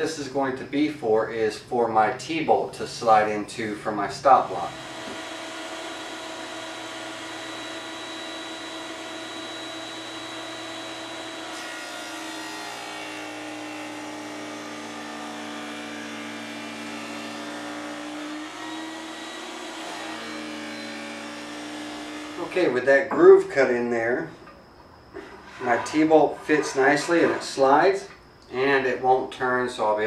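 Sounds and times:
table saw cutting wood: 0:04.3 - 0:22.9, 0:25.1 - 0:28.1.

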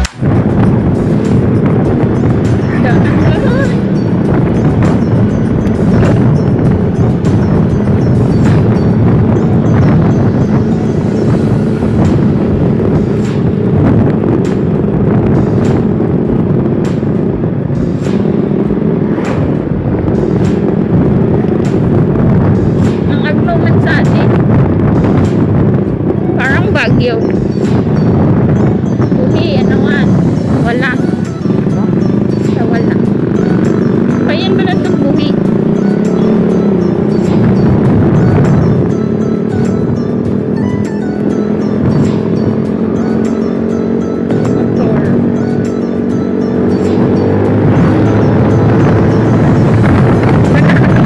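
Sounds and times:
motorcycle engine: 0:00.0 - 0:51.0
road noise: 0:00.0 - 0:51.0
wind buffeting microphone: 0:00.0 - 0:51.0.

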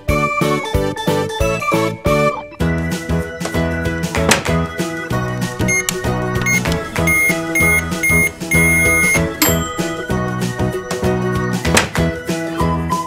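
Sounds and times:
cheerful background music: 0:00.0 - 0:13.0
toy microwave beeps: 0:05.6 - 0:10.3.

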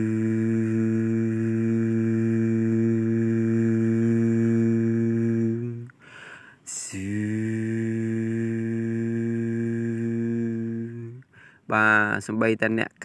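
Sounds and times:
man humming low note: 0:00.0 - 0:06.0, 0:06.7 - 0:11.2.

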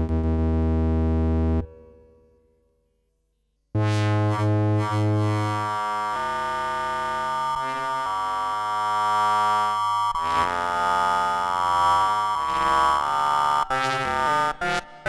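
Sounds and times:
analog synthesizer held notes: 0:00.0 - 0:02.0, 0:03.8 - 0:14.9.

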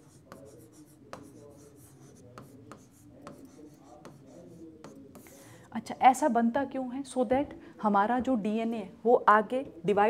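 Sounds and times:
stylus scratching on glass: 0:00.0 - 0:05.3.

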